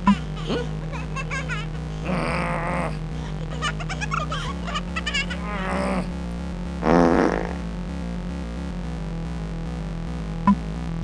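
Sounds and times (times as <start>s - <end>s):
background music: 0.0s - 9.1s
cartoon creature cries: 2.0s - 3.0s, 5.1s - 6.1s.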